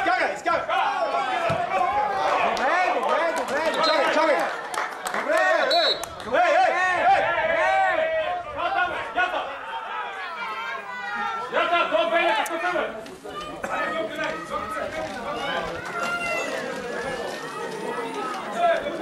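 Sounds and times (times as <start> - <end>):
men shouting and talking: 0.0 - 19.0.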